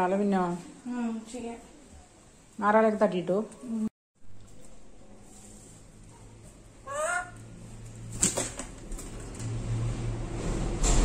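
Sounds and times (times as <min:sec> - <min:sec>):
parrot squawk: 0:06.8 - 0:07.4.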